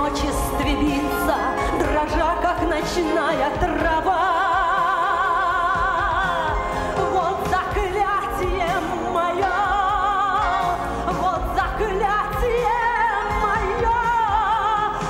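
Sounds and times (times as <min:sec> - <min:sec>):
band accompaniment: 0:00.0 - 0:15.0
woman singing with vibrato: 0:00.0 - 0:15.0.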